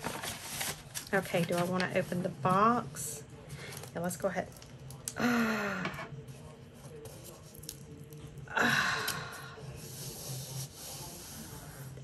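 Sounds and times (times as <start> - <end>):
faint handling sounds: 0.0 - 5.1.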